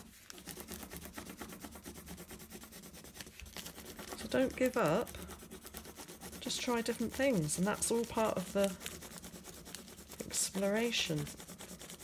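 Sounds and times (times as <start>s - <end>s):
pencil scratching on paper: 0.0s - 12.0s.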